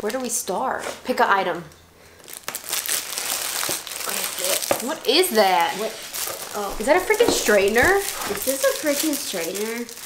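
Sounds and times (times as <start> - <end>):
plastic and tissue paper crinkling: 2.2 - 10.0.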